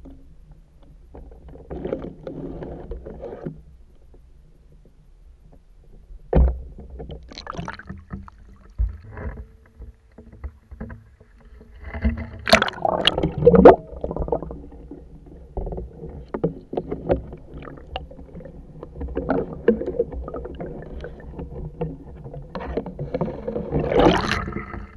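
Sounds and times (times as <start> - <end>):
muffled underwater water sloshing: 5.6 - 24.9.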